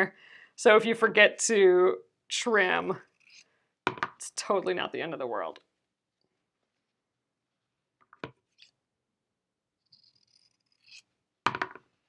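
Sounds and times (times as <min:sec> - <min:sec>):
scissors cutting fabric: 0:09.8 - 0:11.1.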